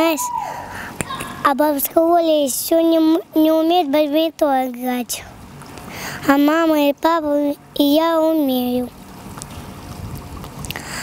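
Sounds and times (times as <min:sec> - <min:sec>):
low rumbling wind noise: 0:05.2 - 0:11.0.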